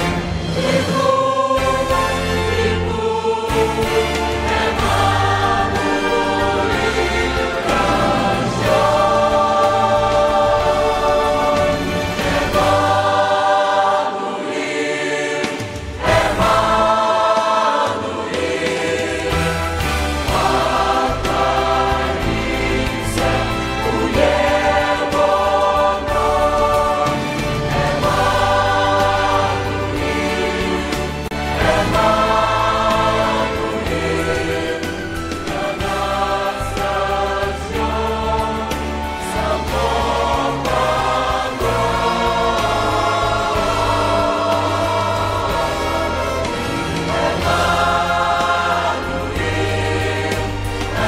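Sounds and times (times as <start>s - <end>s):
mixed choir singing a hymn: 0.0s - 51.0s.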